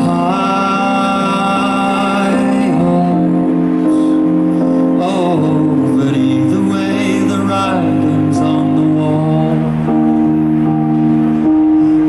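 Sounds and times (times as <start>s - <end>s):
electric keyboard chords: 0.0s - 12.0s.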